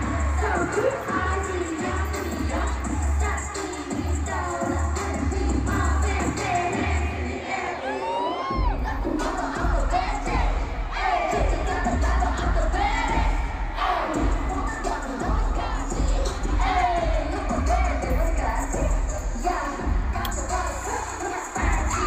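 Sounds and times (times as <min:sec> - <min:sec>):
pop song over sound system: 0:00.0 - 0:22.0
crowd cheering: 0:06.3 - 0:22.0.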